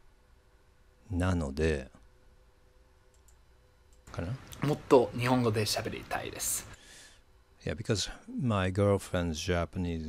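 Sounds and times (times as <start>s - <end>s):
faint steady hum: 0.0s - 10.0s
computer mouse clicks: 3.1s - 4.1s.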